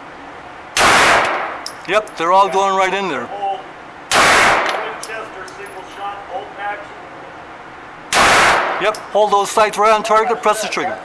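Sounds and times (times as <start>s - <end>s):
pistol shot with echo: 0.8s - 1.6s, 4.1s - 5.0s, 8.1s - 8.9s.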